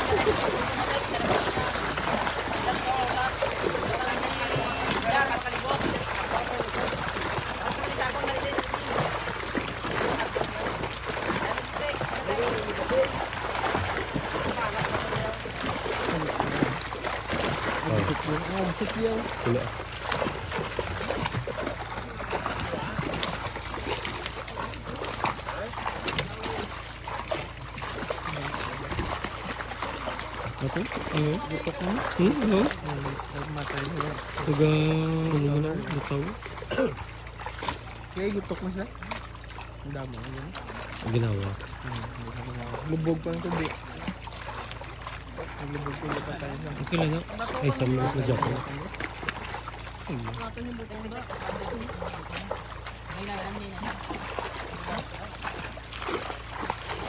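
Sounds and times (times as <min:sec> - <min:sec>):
people talking: 0:00.0 - 0:09.1, 0:10.0 - 0:13.3, 0:17.8 - 0:19.7, 0:30.6 - 0:37.0, 0:45.6 - 0:48.9
fish thrashing in water: 0:00.0 - 0:57.0
water rushing and splashing: 0:00.0 - 0:57.0.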